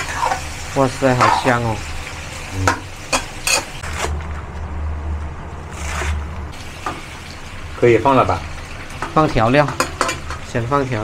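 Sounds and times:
food sizzling in oil: 0:00.0 - 0:04.2, 0:05.7 - 0:11.0.

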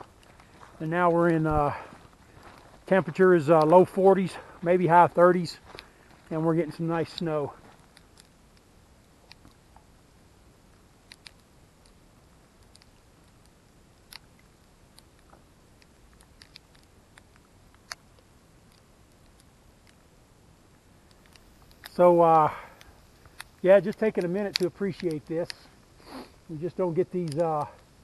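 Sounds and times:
snow pellets ticking: 0:21.0 - 0:27.8.

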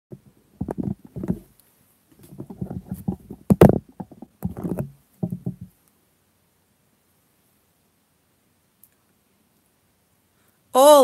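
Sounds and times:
handling rubs and soft knocks: 0:00.2 - 0:05.8.

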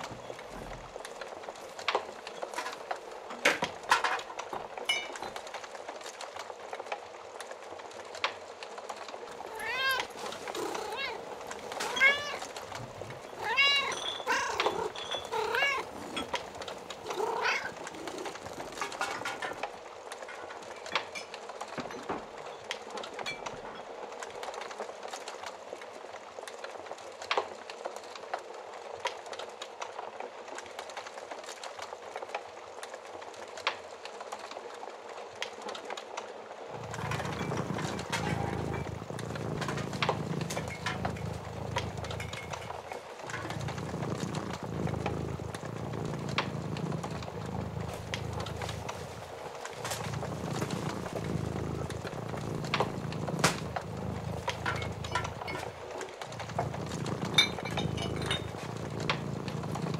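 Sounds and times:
wood fire crackling and popping: 0:00.0 - 0:59.9
cat meowing: 0:09.4 - 0:16.0, 0:17.0 - 0:18.2.

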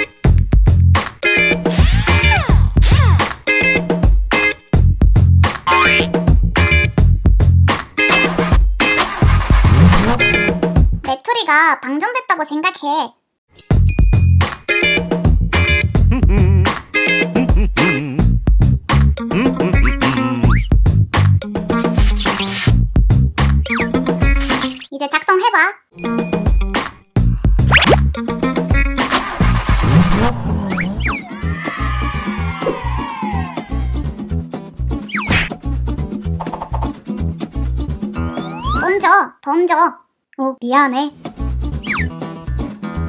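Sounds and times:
car engine cranking: 0:09.0 - 0:10.4, 0:29.1 - 0:31.2
background music: 0:13.6 - 0:24.5, 0:26.0 - 0:39.0, 0:41.1 - 0:43.0.

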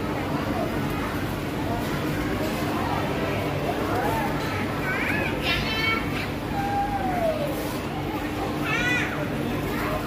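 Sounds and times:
shop chatter: 0:00.0 - 0:10.0.

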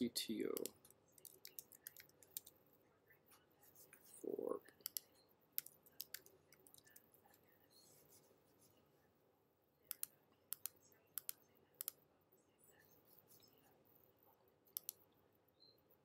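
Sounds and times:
computer mouse clicks: 0:00.5 - 0:02.6, 0:04.7 - 0:07.1, 0:09.9 - 0:12.0, 0:14.7 - 0:15.1.

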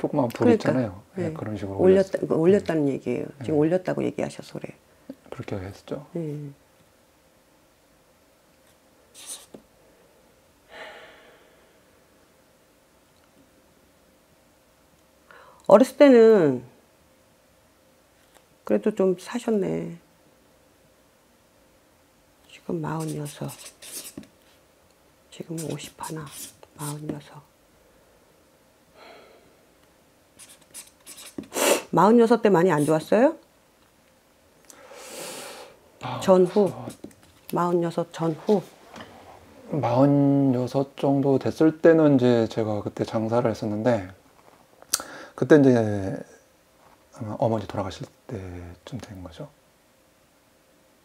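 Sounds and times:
pen scratching on paper: 0:09.2 - 0:09.6, 0:22.9 - 0:24.3, 0:25.5 - 0:27.0, 0:30.4 - 0:31.7, 0:32.8 - 0:33.1
person speaking: 0:22.5 - 0:24.2, 0:25.4 - 0:27.5, 0:30.4 - 0:33.4, 0:36.0 - 0:38.8
loud hiss: 0:30.8 - 0:32.0, 0:34.8 - 0:35.8.

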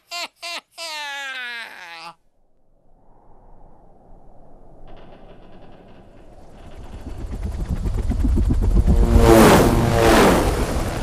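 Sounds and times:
helicopter rotors chopping: 0:04.9 - 0:11.0.

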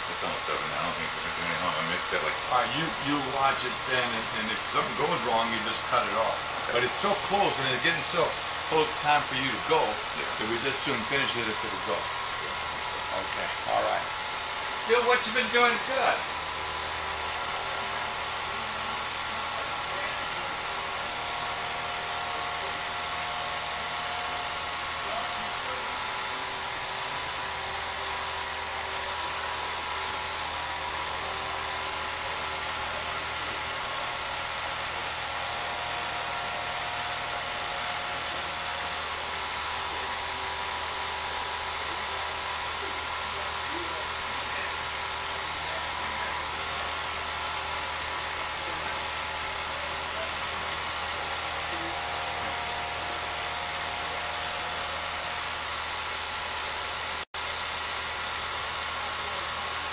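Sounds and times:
film projector motor whirring: 0:00.0 - 0:59.9.

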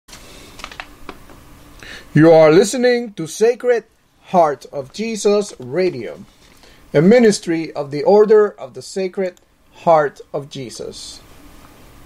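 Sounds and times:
faint steady hiss: 0:00.1 - 0:12.0.

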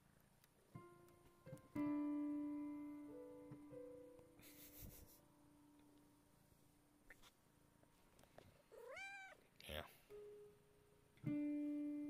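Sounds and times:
cat meowing: 0:08.7 - 0:09.4.

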